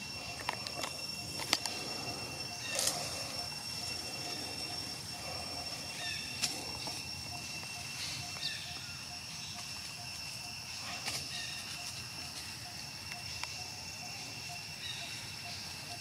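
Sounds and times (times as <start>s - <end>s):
high-pitched insect drone: 0.0s - 16.0s.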